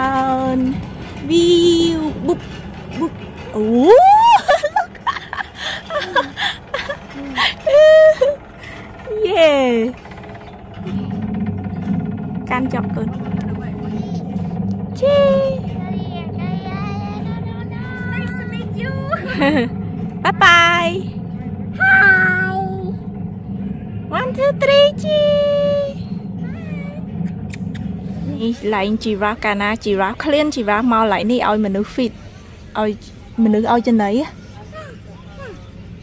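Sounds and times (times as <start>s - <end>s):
chairlift machinery rattling: 0.0s - 36.0s
steady low hum: 0.0s - 36.0s.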